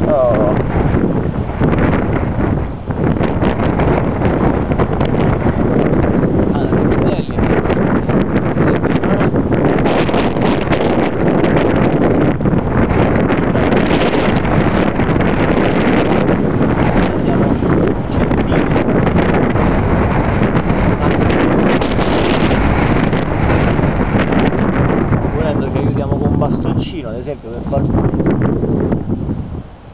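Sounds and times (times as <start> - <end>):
strong wind buffeting microphone: 0.0 - 29.9.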